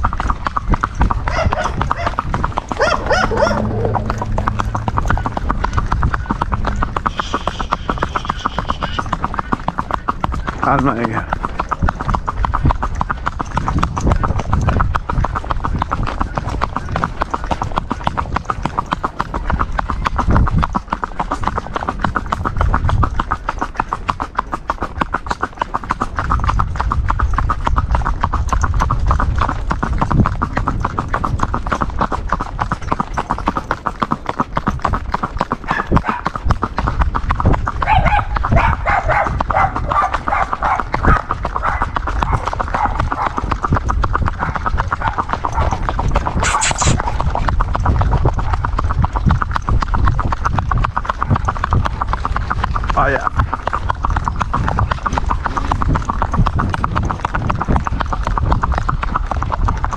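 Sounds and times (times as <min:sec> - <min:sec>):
hooves clip-clopping on pavement: 0:00.0 - 0:59.9.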